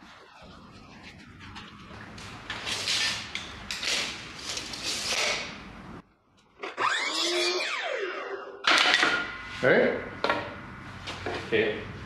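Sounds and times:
saw blade winding down: 6.7 - 8.6.

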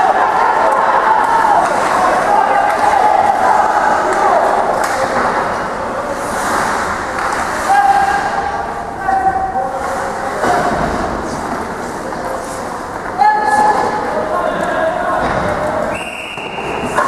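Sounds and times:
people shouting: 0.0 - 5.2, 7.6 - 9.6
ice rink and crowd din: 0.0 - 17.0.

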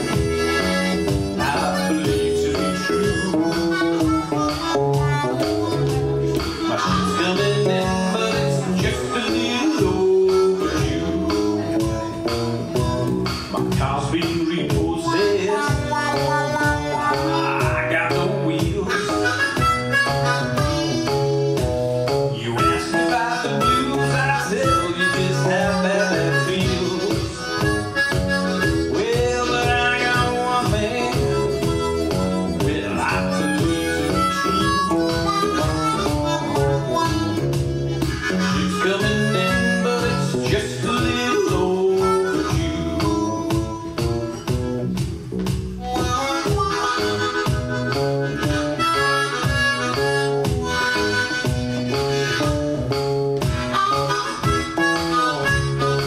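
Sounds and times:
electric guitar bass line: 0.0 - 56.0
harmonica wailing: 0.0 - 56.0.

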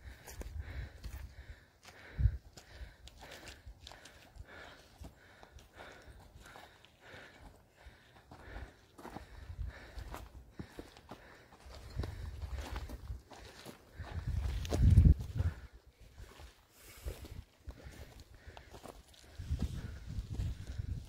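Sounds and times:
footsteps on stony path: 0.0 - 21.0.

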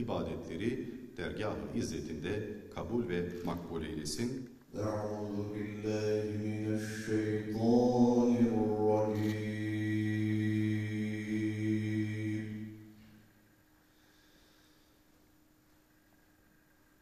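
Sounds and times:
man chanting: 0.0 - 12.8.

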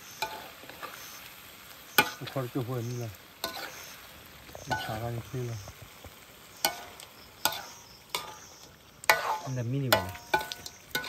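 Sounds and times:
food sizzling in a wok: 0.0 - 11.0
metal ladle clinking against pan: 9.1 - 11.0.

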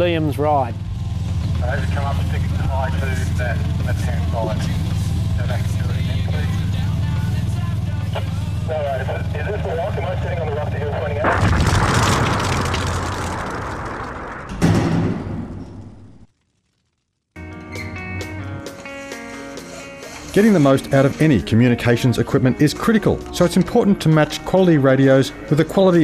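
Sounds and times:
engine running at low revs: 0.0 - 13.9
boom: 11.2 - 16.3.

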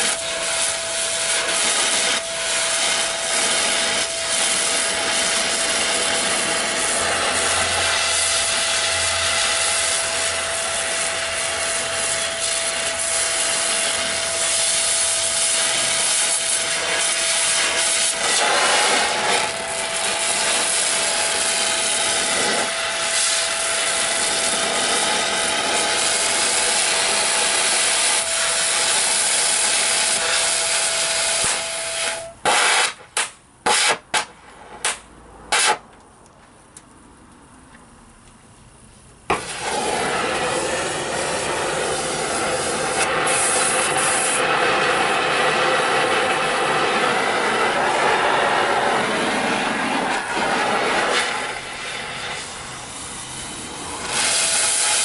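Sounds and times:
cutting torch hissing: 0.0 - 35.8, 39.3 - 55.0
short gas bursts: 0.0 - 35.8, 39.3 - 55.0.

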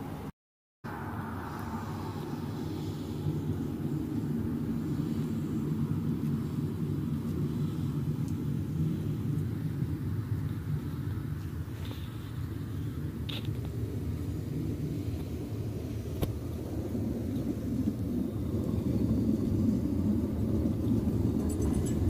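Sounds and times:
tram rumbling on rails: 0.9 - 22.0.

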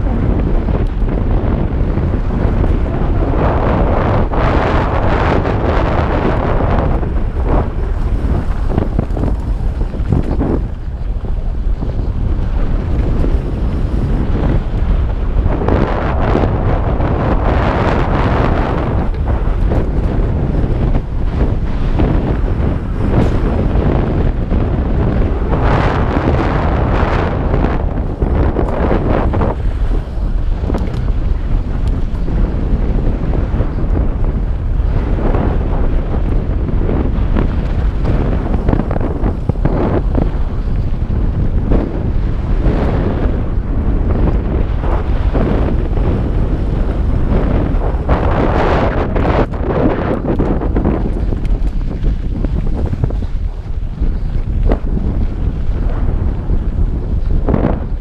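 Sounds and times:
bike tyres on loose dirt: 0.0 - 58.0
wind rushing over microphone: 0.0 - 58.0.

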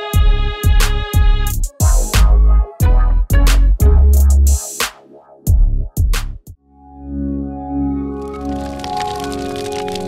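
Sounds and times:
held synth chord: 6.7 - 8.8
dense crackling effect: 8.2 - 10.0.

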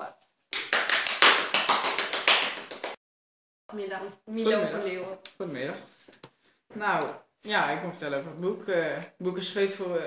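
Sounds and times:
hand clapping: 0.5 - 3.0.

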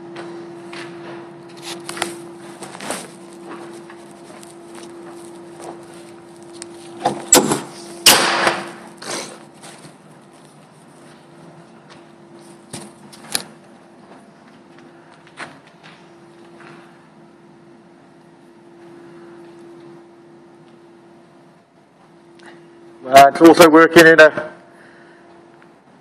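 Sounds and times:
wheel loader humming: 0.0 - 15.1.

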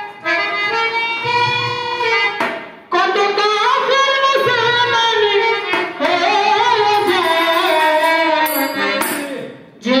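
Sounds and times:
woman singing through loudspeakers: 0.0 - 10.0.

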